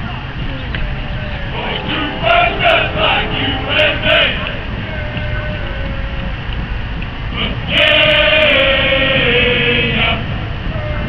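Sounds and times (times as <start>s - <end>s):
low outdoor rumble: 0.0s - 11.0s
long held musical note: 0.9s - 6.1s.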